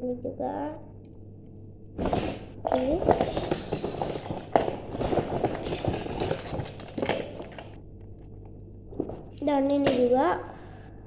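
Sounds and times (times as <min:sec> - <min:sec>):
toy cars clattering in plastic box: 0:02.0 - 0:07.8.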